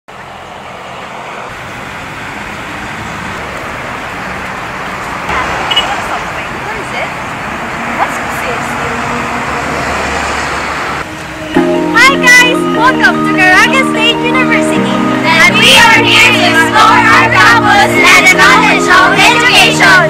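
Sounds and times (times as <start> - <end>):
road traffic: 0.1 - 20.0.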